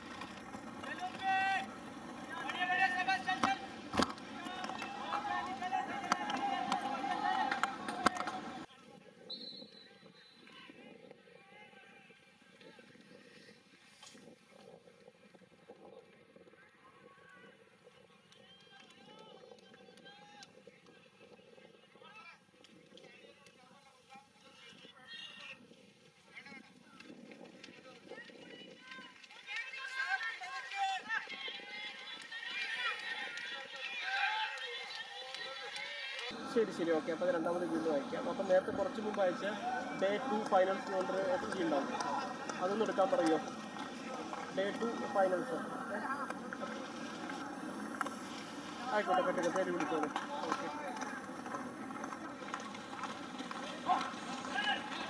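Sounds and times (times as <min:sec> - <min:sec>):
runners' footfalls: 0:00.0 - 0:08.7, 0:25.4 - 0:55.0
voices calling and talking: 0:00.0 - 0:55.0.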